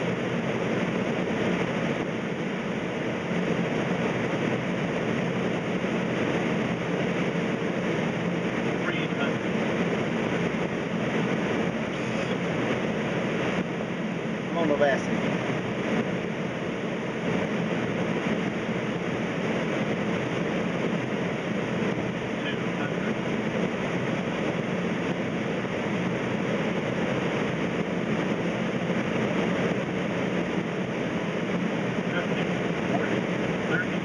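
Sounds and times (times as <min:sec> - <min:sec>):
aircraft engine noise: 0:00.0 - 0:34.0.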